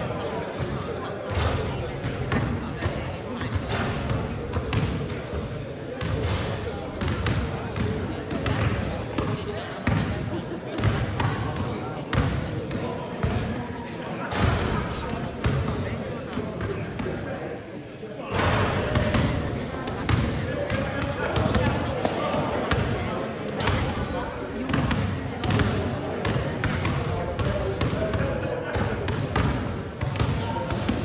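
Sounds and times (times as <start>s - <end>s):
basketballs bouncing on court: 1.2s - 13.6s, 14.3s - 16.0s, 18.3s - 31.0s.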